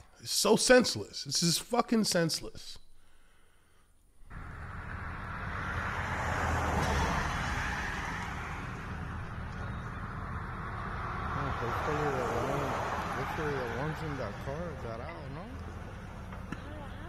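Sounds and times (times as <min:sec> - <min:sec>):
man talking: 0:00.0 - 0:02.8, 0:11.3 - 0:15.6.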